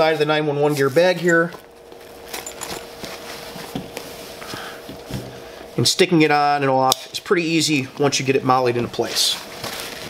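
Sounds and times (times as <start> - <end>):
nylon fabric and straps rustling: 0.8 - 5.2, 9.0 - 10.0.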